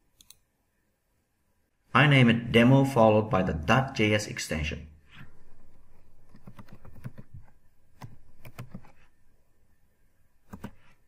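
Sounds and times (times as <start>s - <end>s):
keyboard typing: 6.2s - 9.1s, 10.4s - 11.0s.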